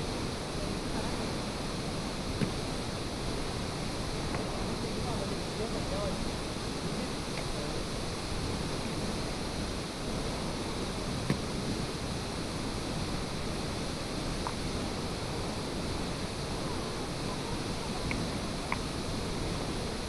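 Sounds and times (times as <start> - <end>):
waterfall rushing into a pool: 0.0 - 20.0.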